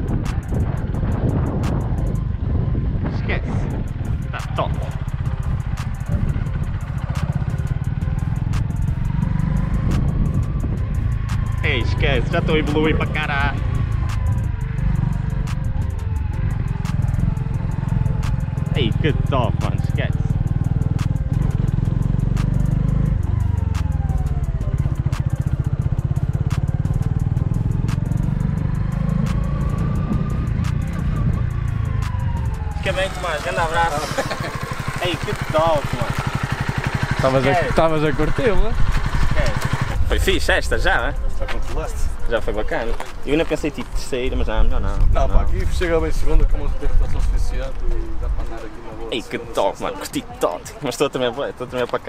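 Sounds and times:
motorcycle engine running: 0.0 - 52.0.

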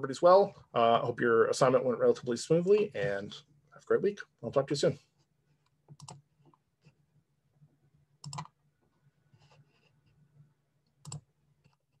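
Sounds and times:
computer mouse clicks: 5.6 - 6.2, 8.2 - 8.6, 10.8 - 12.0.

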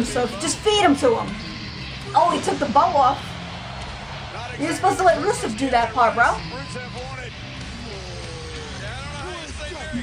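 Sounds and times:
arena crowd din: 0.0 - 10.0
voices shouting and talking: 0.0 - 10.0.

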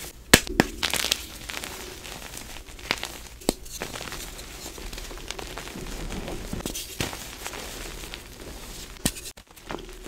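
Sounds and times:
chalk cracking: 0.0 - 10.0
powdery rustling: 0.0 - 10.0
chalk crunching in hands: 0.8 - 9.4.

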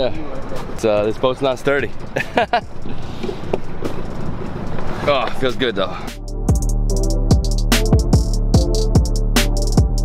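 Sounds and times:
man laughing: 2.2 - 2.7.

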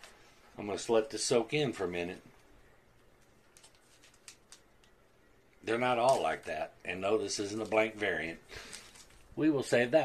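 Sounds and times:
plastic bag crinkling: 3.0 - 5.0, 5.7 - 9.4.

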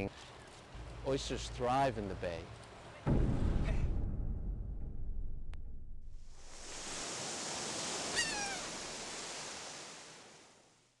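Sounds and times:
rushing surf-like noise: 6.3 - 10.8
falling gull cry: 8.2 - 8.8.

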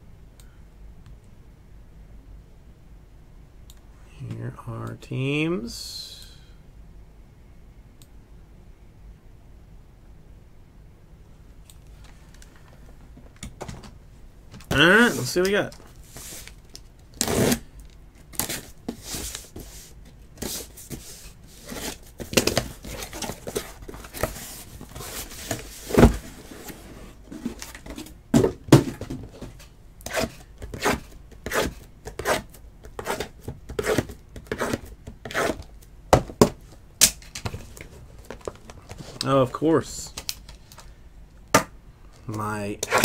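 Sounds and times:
cardboard and plastic wrap handling: 18.3 - 29.6.

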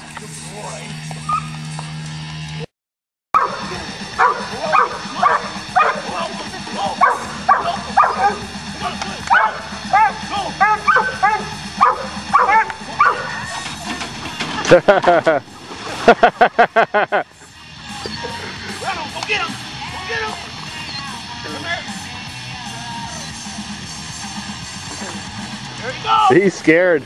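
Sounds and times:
dog barking and yipping: 3.4 - 6.1, 7.0 - 8.5, 9.2 - 13.8
background music: 3.4 - 27.0.

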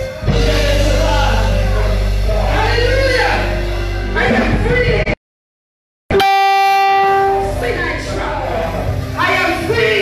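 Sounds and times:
horn-like held note: 6.1 - 7.8.

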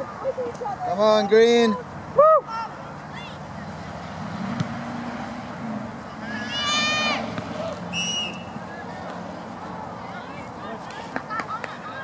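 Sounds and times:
high-pitched shout: 6.2 - 7.3.

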